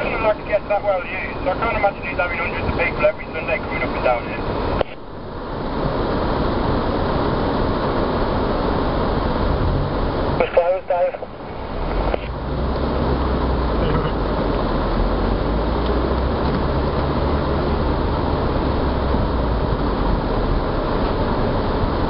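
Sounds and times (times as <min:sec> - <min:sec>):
low engine drone: 0:00.0 - 0:22.0
vehicle engine and track rumble: 0:00.0 - 0:22.0.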